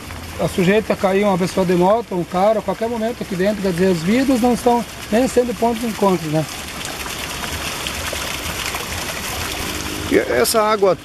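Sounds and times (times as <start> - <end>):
water running in a gutter: 0.0 - 11.0.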